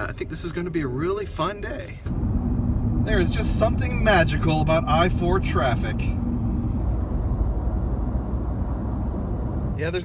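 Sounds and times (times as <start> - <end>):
car engine and road rumble: 0.0 - 10.0.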